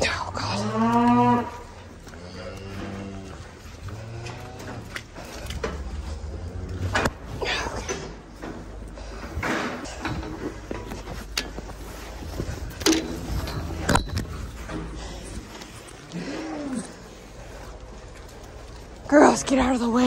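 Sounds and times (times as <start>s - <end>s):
cow mooing: 0.4s - 7.1s.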